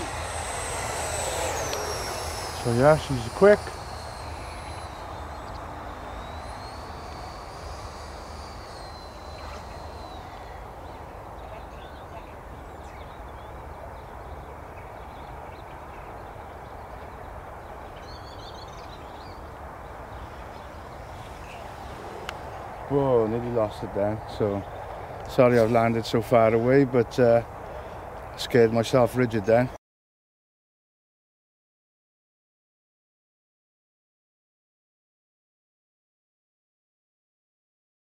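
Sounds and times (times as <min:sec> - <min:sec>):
model jet fan whine: 0:00.0 - 0:29.7
outdoor background noise: 0:00.0 - 0:29.8.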